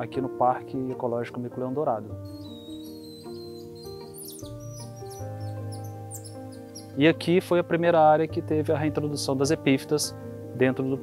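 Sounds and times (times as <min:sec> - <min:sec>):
music with sustained chords: 0:00.0 - 0:11.0
high-pitched downward chirps: 0:02.3 - 0:07.0.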